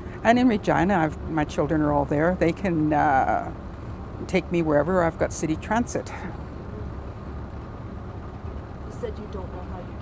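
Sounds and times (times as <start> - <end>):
coach engine and road rumble: 0.0 - 10.0.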